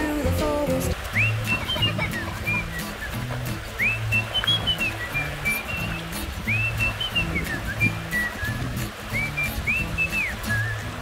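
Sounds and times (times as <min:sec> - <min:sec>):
whistled melody: 0:01.1 - 0:11.0.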